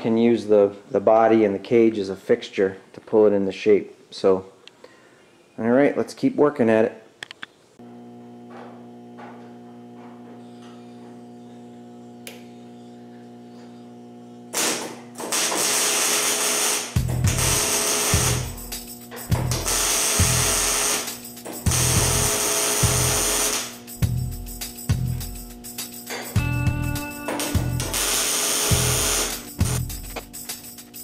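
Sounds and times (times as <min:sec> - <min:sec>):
welder crackling hiss: 0:14.5 - 0:26.3, 0:27.4 - 0:31.0.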